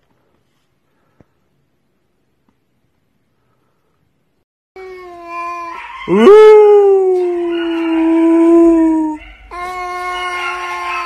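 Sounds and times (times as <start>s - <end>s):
animal howling: 5.6s - 11.0s.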